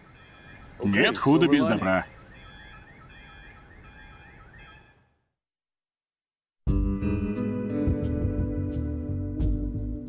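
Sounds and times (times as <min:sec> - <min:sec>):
car alarm rising sweeps: 0:00.0 - 0:05.2.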